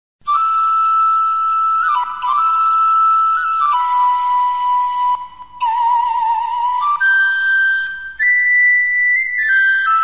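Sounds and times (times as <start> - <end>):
flute-like melody: 0.2 - 10.0.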